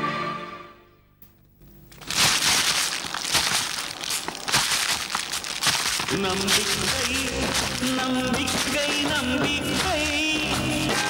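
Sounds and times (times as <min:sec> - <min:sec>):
grain rattling on winnowing tray: 0:01.9 - 0:11.0.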